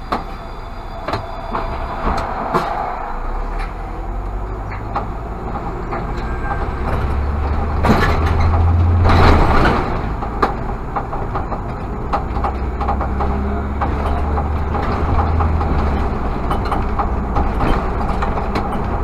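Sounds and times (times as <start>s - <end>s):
bus engine drone: 0.0s - 19.0s
passing bus rush: 0.0s - 19.0s.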